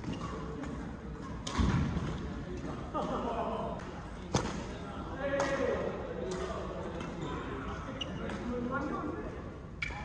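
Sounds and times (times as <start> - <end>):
voices in a hall: 0.0 - 10.0.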